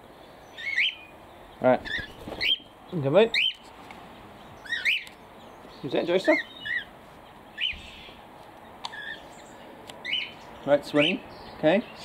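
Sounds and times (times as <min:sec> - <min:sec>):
bird chirping: 0:00.1 - 0:12.0.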